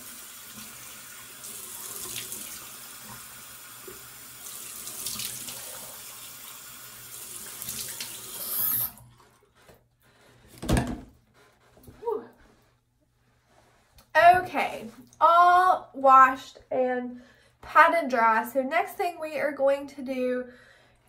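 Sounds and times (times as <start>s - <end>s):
sink tap running: 0.0s - 9.1s.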